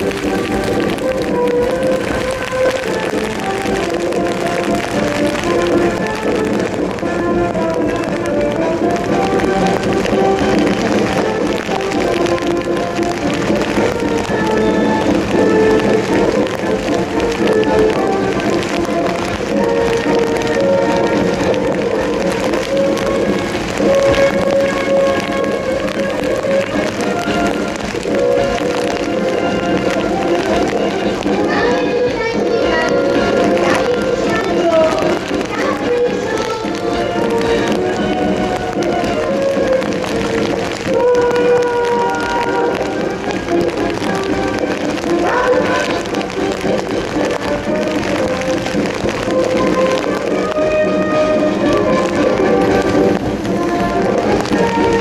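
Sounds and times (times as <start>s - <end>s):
military band playing a march: 0.0s - 55.0s.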